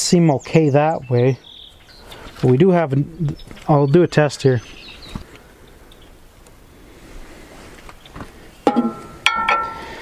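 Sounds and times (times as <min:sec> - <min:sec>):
metal clank ringing: 0:08.7 - 0:10.0.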